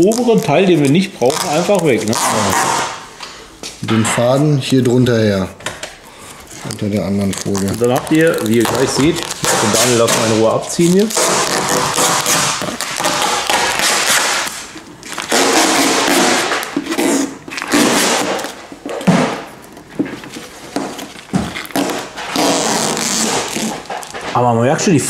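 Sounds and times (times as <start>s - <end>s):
vinyl foil rustling and crinkling: 0.0s - 3.0s, 6.4s - 24.5s.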